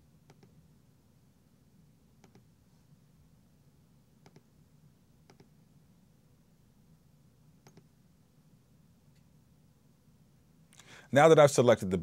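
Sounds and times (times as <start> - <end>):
low steady hum: 0.0 - 12.0
computer mouse button clicks: 0.3 - 0.5, 2.2 - 2.5, 4.2 - 4.5, 5.3 - 5.5, 7.6 - 7.9.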